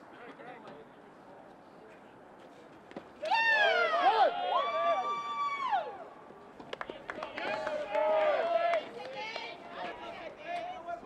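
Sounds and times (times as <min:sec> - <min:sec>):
people yelling: 0:03.2 - 0:06.1.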